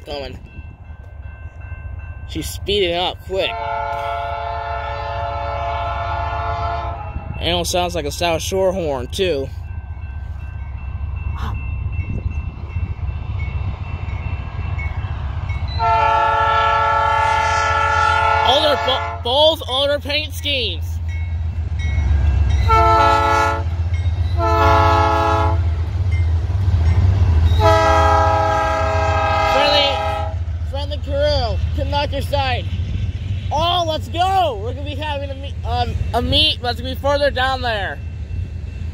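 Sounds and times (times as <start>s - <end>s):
train rumbling past: 0.0s - 38.9s
locomotive air horn chord: 3.5s - 7.2s, 15.8s - 19.3s, 22.7s - 23.7s, 24.4s - 25.7s, 27.6s - 30.5s.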